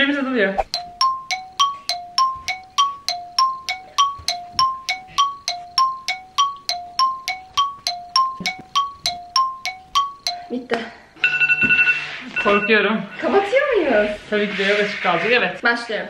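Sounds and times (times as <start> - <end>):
electronic timer blips tick-tock: 0.6 - 10.6.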